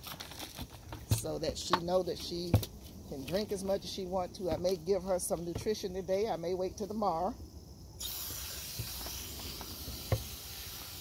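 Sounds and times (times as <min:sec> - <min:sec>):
hose water spray hissing onto soil: 0:08.0 - 0:11.0.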